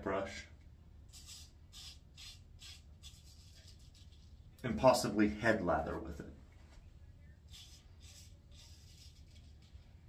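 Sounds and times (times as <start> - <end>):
razor scraping beard stubble: 1.1 - 4.4, 7.5 - 9.8.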